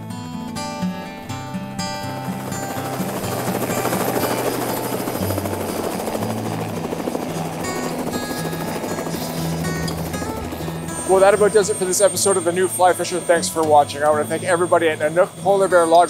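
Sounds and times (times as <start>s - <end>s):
background music: 0.0s - 16.0s
helicopter rotor and engine: 0.4s - 16.0s.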